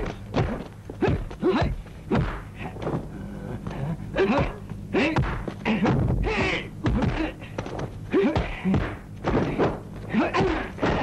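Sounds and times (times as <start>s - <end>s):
fighters grunting and shouting: 0.0s - 2.8s, 3.5s - 11.0s
punch and kick thuds: 0.0s - 3.0s, 5.1s - 11.0s.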